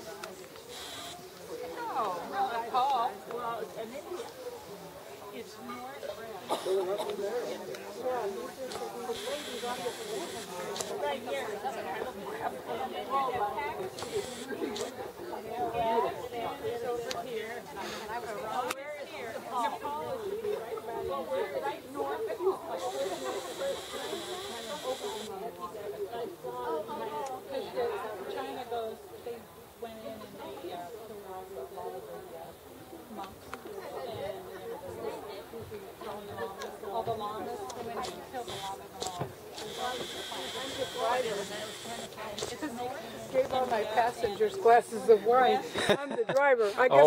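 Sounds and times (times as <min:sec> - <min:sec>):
people chattering: 0:00.0 - 0:47.0
people talking at once: 0:00.0 - 0:47.0
steady high hiss: 0:00.6 - 0:01.4, 0:09.1 - 0:11.0, 0:22.8 - 0:25.3.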